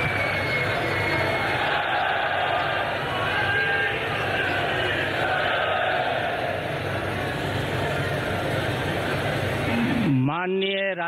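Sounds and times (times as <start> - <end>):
crowd din: 0.0 - 10.2
low hum: 0.0 - 10.2.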